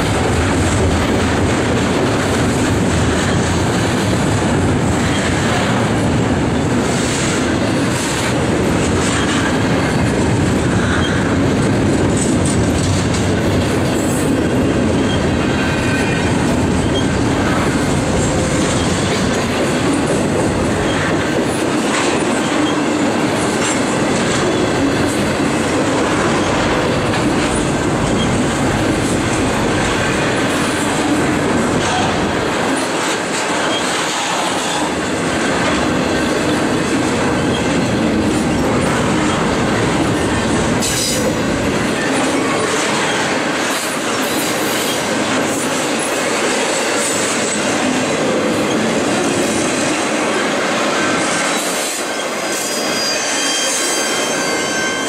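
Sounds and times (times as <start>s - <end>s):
train wheels rumbling on rail: 0.0s - 55.0s
metallic wheel squeal: 52.2s - 55.0s.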